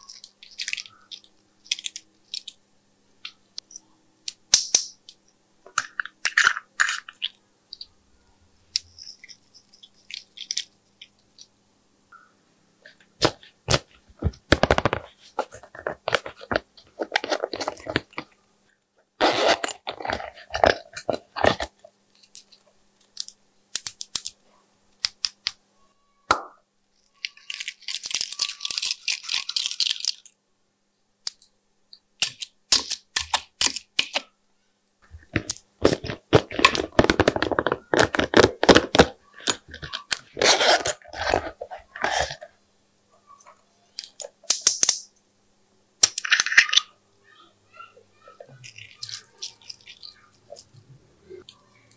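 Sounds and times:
glitter shaking and pouring: 27.2 - 30.3, 48.5 - 50.8.

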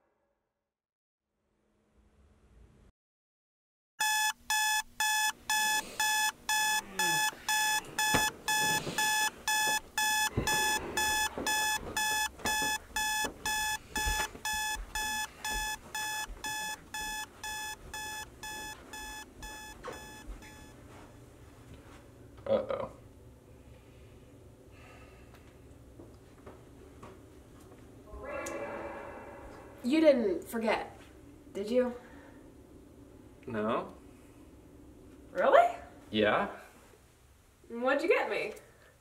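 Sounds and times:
alarm clock beeping: 4.0 - 20.8.

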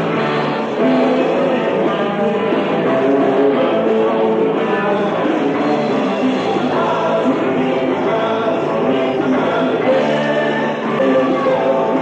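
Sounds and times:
live rock band playing: 0.0 - 12.0
person singing: 0.0 - 12.0.

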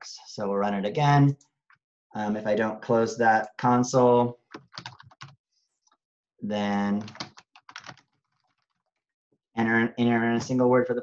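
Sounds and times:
computer keyboard typing: 4.5 - 5.4, 7.0 - 8.9.

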